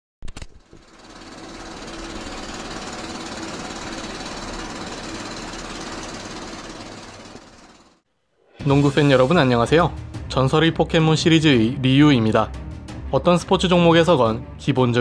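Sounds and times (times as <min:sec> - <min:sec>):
film projector clatter: 0:00.2 - 0:08.0
film projector clicks: 0:00.2 - 0:08.0.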